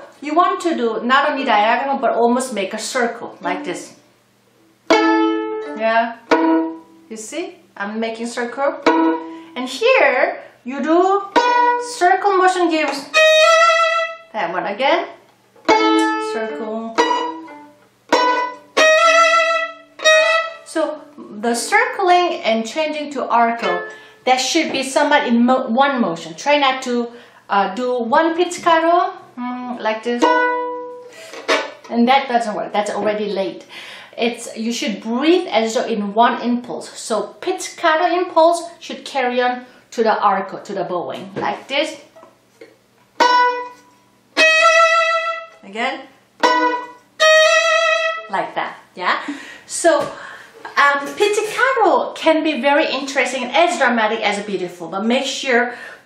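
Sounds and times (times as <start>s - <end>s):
violin pizzicato chords: 3.2s - 4.0s, 4.6s - 7.8s, 8.4s - 9.8s, 10.8s - 22.2s, 22.8s - 25.1s, 28.4s - 31.9s, 43.0s - 51.6s
sustained bowed violin note: 4.9s - 7.1s, 8.8s - 9.6s, 12.9s - 14.3s, 15.6s - 20.7s, 23.6s - 24.2s, 30.2s - 31.1s, 43.2s - 45.6s, 46.4s - 48.3s.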